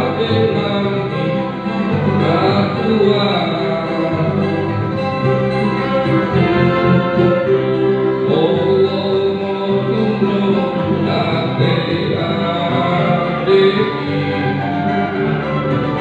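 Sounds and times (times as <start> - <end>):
person singing: 0.0 - 16.0
string ensemble playing: 0.0 - 16.0.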